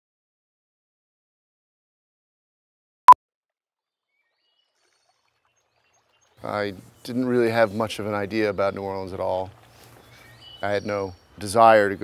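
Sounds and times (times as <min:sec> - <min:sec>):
faint swamp ambience: 0:04.1 - 0:12.0.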